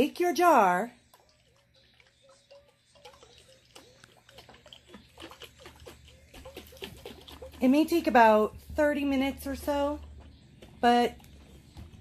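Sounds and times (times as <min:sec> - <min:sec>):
cream sloshing in a glass jar: 0:01.1 - 0:10.2.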